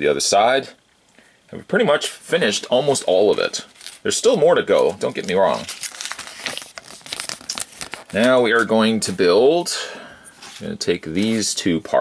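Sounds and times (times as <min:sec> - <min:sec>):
paper booklet crinkling: 0:02.5 - 0:09.1, 0:10.4 - 0:11.6.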